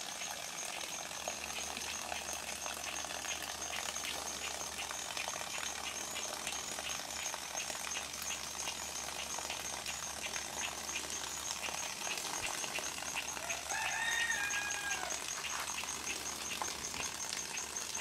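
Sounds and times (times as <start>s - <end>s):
fast high ticking: 0.0s - 18.0s
fine rapid clicking: 0.0s - 18.0s
rooster crowing: 13.4s - 15.6s.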